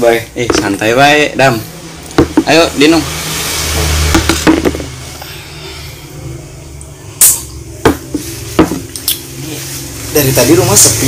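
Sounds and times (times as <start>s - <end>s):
glasses knocking on a table: 2.1s - 2.5s, 4.1s - 4.9s, 7.8s - 8.9s.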